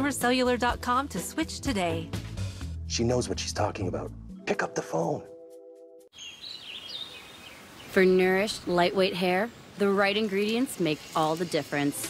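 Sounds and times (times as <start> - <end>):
birds chirping: 6.1 - 12.0
steady outdoor hiss: 6.2 - 12.0.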